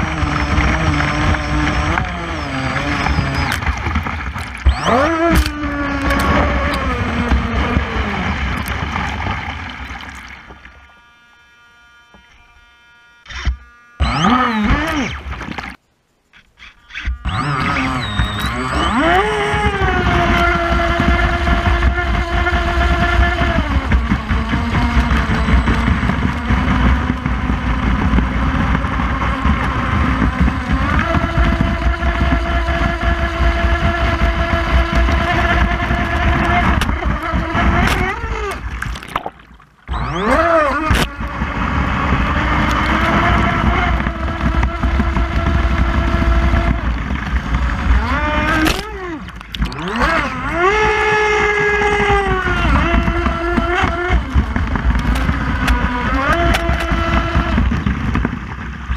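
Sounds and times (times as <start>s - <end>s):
water rushing against hull: 0.0s - 11.4s, 17.2s - 58.9s
electric motor whining: 0.0s - 58.9s.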